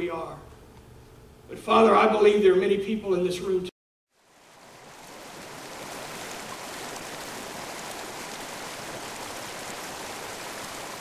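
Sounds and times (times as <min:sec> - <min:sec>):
running water rushing: 0:04.1 - 0:11.0.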